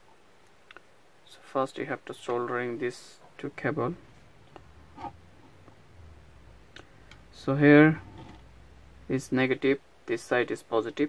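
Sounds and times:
steady low hum: 1.0s - 11.0s.

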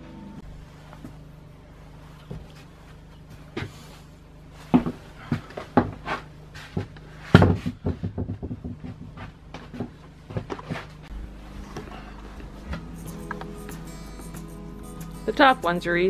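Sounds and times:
knocks and thumps on wooden wall: 6.8s - 10.8s.

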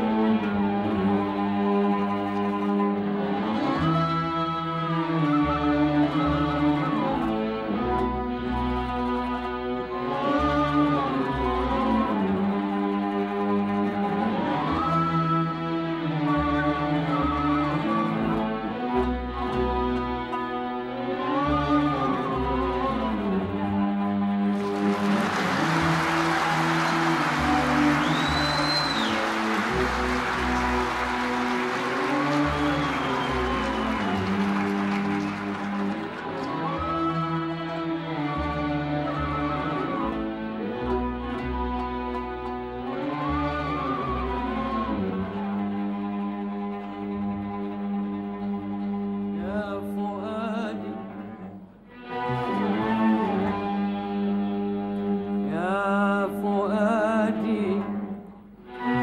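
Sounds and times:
strings holding low notes: 0.0s - 59.0s
audience applause: 24.5s - 37.4s.

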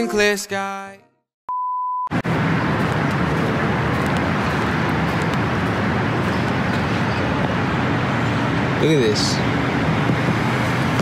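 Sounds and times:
street traffic noise: 2.1s - 11.0s.

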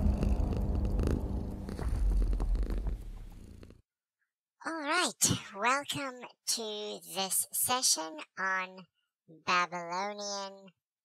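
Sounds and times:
cat purring: 0.0s - 3.8s.

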